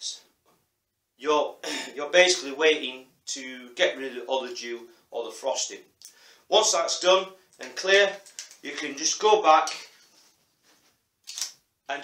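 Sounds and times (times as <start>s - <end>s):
camera shutter click: 11.3s - 11.6s.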